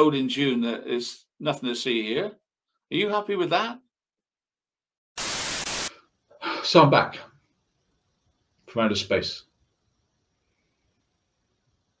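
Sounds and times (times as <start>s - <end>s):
static hiss burst: 5.2s - 6.7s.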